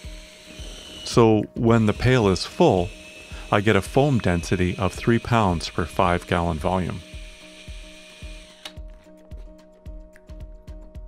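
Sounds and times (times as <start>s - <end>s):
drill whirring: 0.0s - 8.8s
background music with steady beat: 0.0s - 11.0s.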